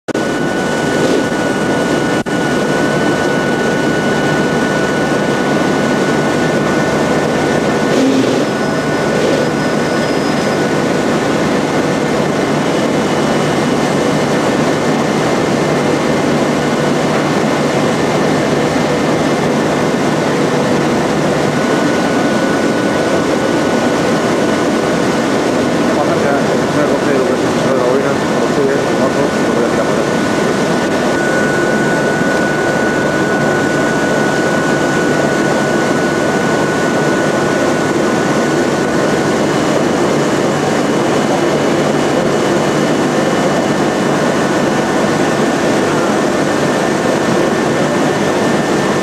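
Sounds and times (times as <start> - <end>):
steady high machine whine: 0.1 - 49.0
paper sheeter machine running: 0.2 - 49.0.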